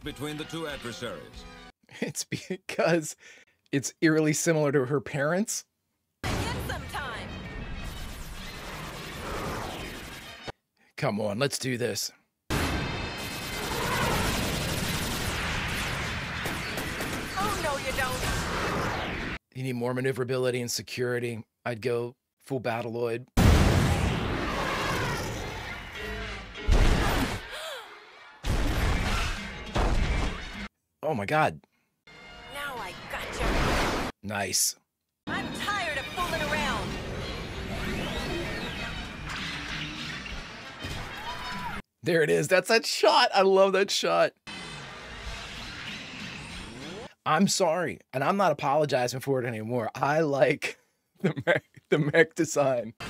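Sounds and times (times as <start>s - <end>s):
cartoon weapons fire: 6.2s - 10.3s, 12.5s - 19.4s, 23.4s - 25.8s, 26.7s - 27.5s, 28.4s - 30.6s
cartoon explosions: 6.2s - 10.5s, 12.5s - 19.4s, 23.4s - 27.8s, 28.4s - 30.7s, 33.1s - 34.1s, 35.3s - 41.8s
crashing burst: 12.5s - 19.4s, 23.4s - 27.5s, 28.4s - 30.6s.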